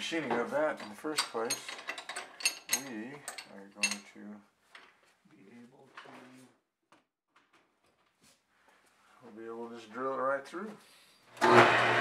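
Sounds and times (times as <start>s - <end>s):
metal tools clinking: 0.2s - 4.2s.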